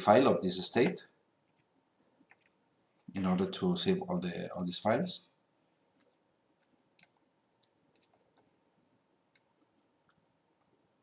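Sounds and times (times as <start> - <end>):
computer mouse clicks: 0.8 - 2.6, 6.0 - 8.5, 9.3 - 10.2.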